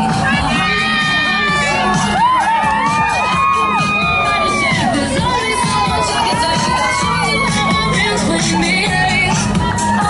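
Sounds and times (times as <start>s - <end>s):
crowd cheering and shouting: 0.0s - 10.0s
music playing: 0.0s - 10.0s.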